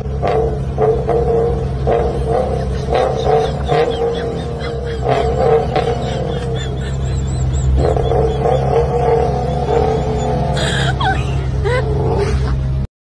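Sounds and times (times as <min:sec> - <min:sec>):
car engine and exhaust droning: 0:00.0 - 0:12.9
voices: 0:00.6 - 0:12.8.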